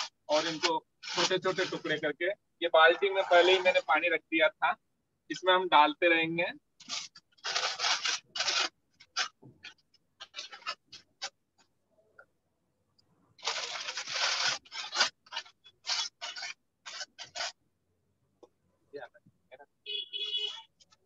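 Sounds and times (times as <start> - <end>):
newspaper tearing: 0.0 - 2.0, 6.8 - 11.3, 13.4 - 17.6.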